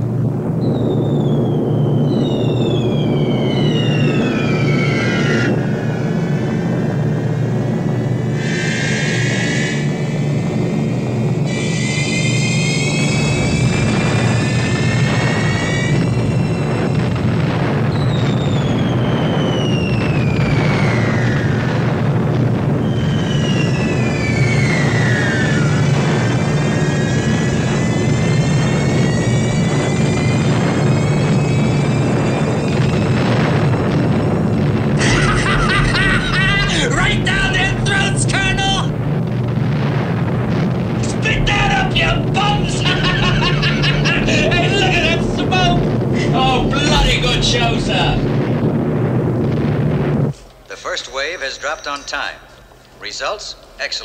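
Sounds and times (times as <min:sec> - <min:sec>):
bombs exploding: 0:00.0 - 0:08.4, 0:12.9 - 0:52.8
propeller bombers droning: 0:00.0 - 0:54.0
falling bomb whistles: 0:00.5 - 0:52.8.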